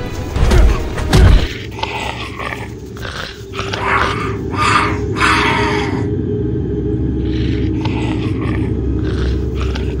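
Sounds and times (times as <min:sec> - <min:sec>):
steady low drone: 0:00.0 - 0:10.0
growling and grunting: 0:00.6 - 0:06.2, 0:07.2 - 0:10.0.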